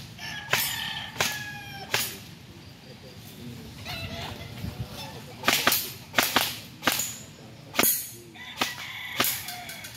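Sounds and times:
airgun shots: 0.5 - 2.3, 5.4 - 9.5.

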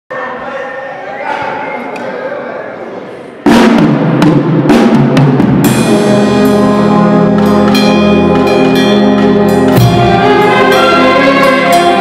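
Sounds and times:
murmuring voices in a hall: 0.1 - 12.0
brass band playing: 3.5 - 12.0.

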